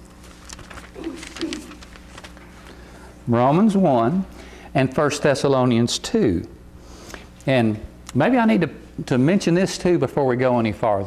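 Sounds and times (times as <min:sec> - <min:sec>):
low electrical hum: 0:00.0 - 0:11.0
paper pages rustling: 0:00.1 - 0:02.8
man humming: 0:01.0 - 0:01.8.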